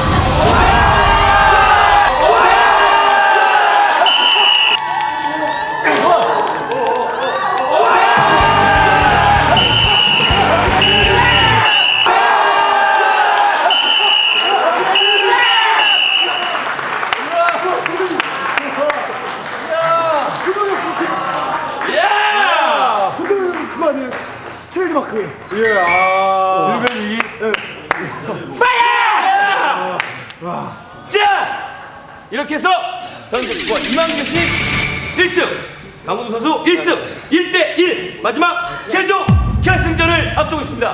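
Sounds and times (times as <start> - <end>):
onlookers cheering and shouting: 0.0 - 16.6
music: 8.2 - 11.7, 33.4 - 35.9
high tone: 25.6 - 26.6
fast clicks with falling tones: 33.4 - 35.3
deep pulsing beat: 39.3 - 40.9.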